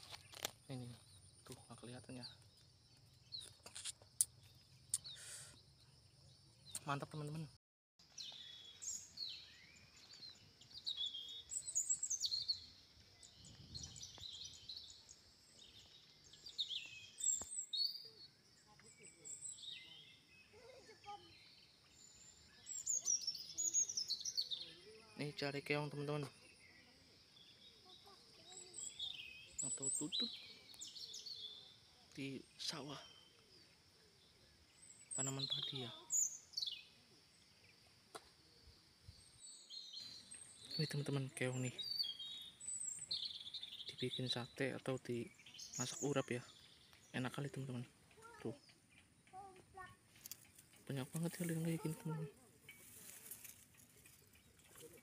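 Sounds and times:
faint outdoor ambience: 0:00.0 - 0:55.0
small birds chirping: 0:00.0 - 0:55.0.

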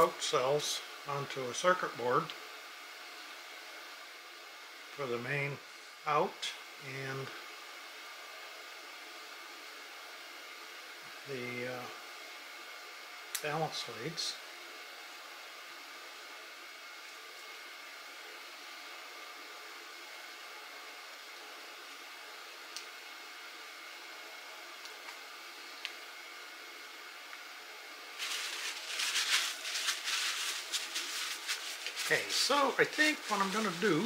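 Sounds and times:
paper towel crinkling: 0:28.2 - 0:34.0
rustling and scraping: 0:28.2 - 0:34.0.

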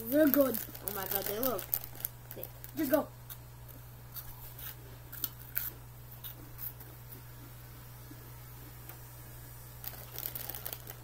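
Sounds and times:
crunchy snack being chewed: 0:09.8 - 0:11.0.

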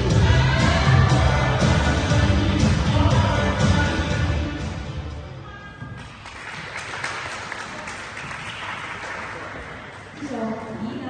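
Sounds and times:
dance music: 0:00.0 - 0:05.5
spectators applauding: 0:06.1 - 0:10.1.

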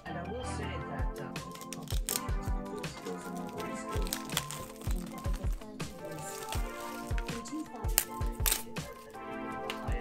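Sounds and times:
music with low drum beat: 0:00.7 - 0:10.0.

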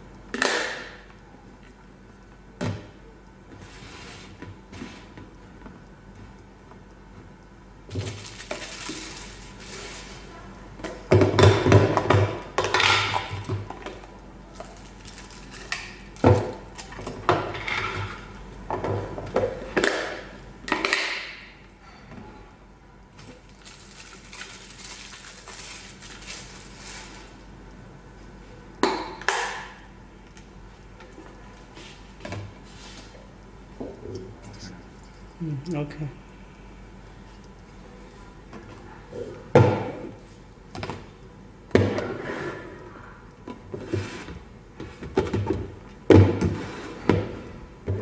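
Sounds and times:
plastic packaging rustling: 0:07.9 - 0:10.2, 0:23.4 - 0:27.4.

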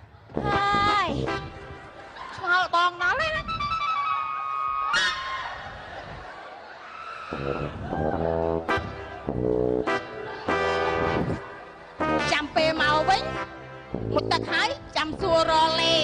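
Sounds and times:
live band brass notes: 0:00.3 - 0:02.0, 0:07.4 - 0:16.0.

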